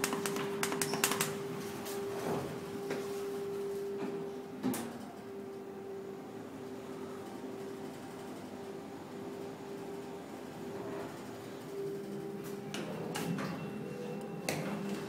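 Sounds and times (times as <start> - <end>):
elevator hum: 0.0 - 15.0.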